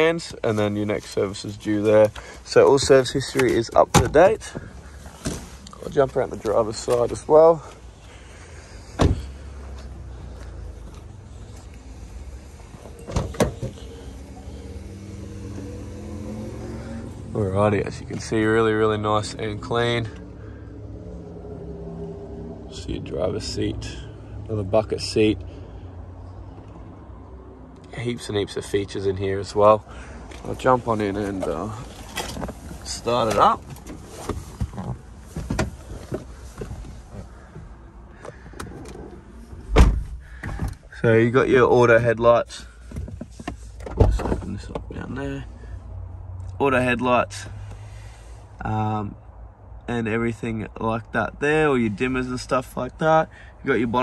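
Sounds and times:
car door shutting: 8.9 - 9.4, 12.7 - 16.7, 33.2 - 40.9
knocks and rustles in car seat: 32.1 - 37.7.

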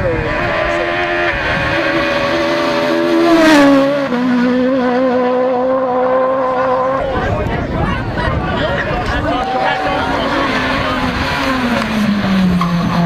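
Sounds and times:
rally car engine passing by: 0.0 - 7.3, 9.0 - 13.0.

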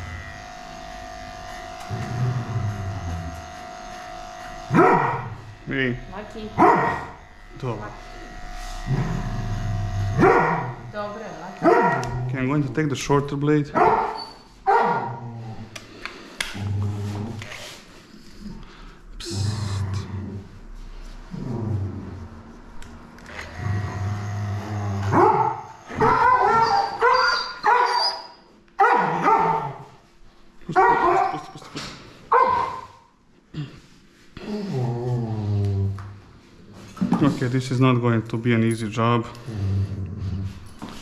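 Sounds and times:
dog growling: 1.7 - 3.6, 4.7 - 12.6, 15.0 - 15.8, 16.4 - 26.7, 34.4 - 36.1, 39.3 - 41.0
dog barking and snarling: 4.6 - 5.5, 6.4 - 7.3, 8.2 - 10.9, 11.5 - 12.4, 13.7 - 15.7, 23.9 - 28.1, 28.8 - 30.0, 30.7 - 33.1.

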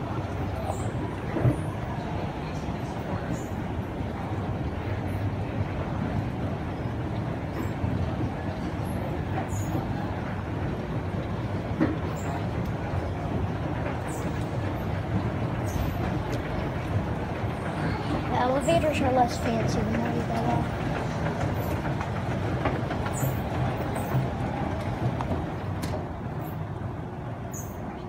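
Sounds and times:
escalator rumbling: 0.0 - 28.0.

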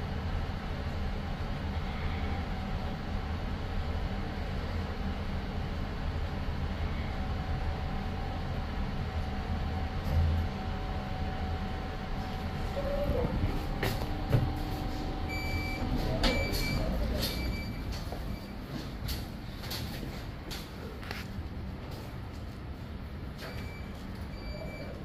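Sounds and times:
lift travelling hum: 0.0 - 25.0
short beeps: 15.3 - 18.6, 23.4 - 25.0.

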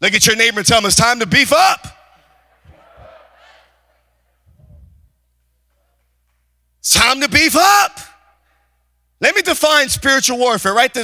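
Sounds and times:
congregation murmuring: 2.0 - 4.5
man speaking: 9.2 - 11.0.

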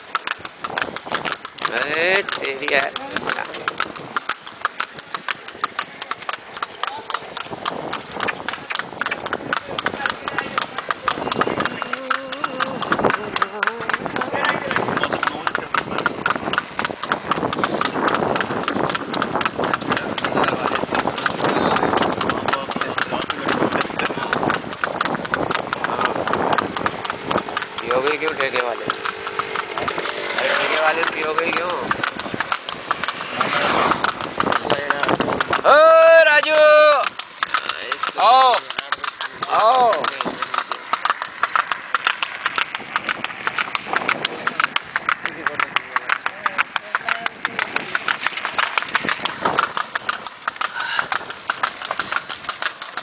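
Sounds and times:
horse hooves clip-clopping on asphalt: 0.0 - 53.0.

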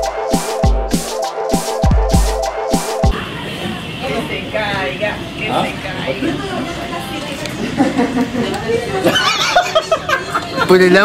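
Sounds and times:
indistinct chatter: 3.1 - 10.8.

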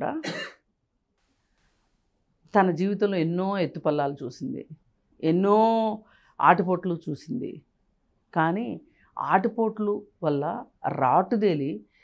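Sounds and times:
woman clearing throat: 0.2 - 0.6.

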